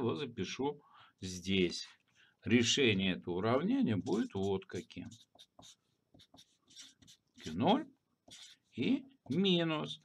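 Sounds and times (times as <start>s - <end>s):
marker writing on paper: 3.9s - 9.6s.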